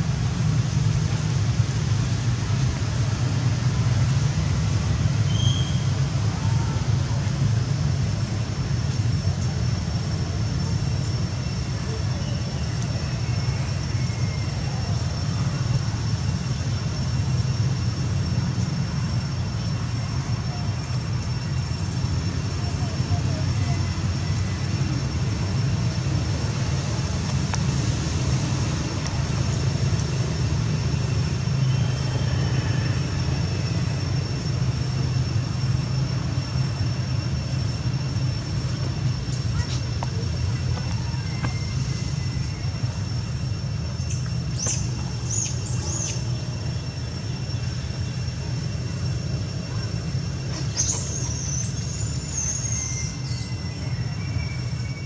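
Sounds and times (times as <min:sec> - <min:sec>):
high-pitched whine: 0:00.0 - 0:55.0.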